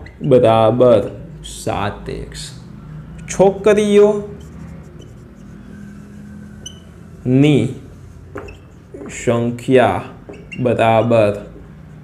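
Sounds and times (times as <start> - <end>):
marker writing on whiteboard: 3.0 - 12.0.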